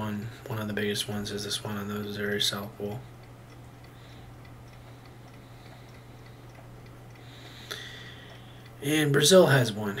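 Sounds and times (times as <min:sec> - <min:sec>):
light regular ticking: 0:00.0 - 0:10.0
steady low hum: 0:00.0 - 0:10.0.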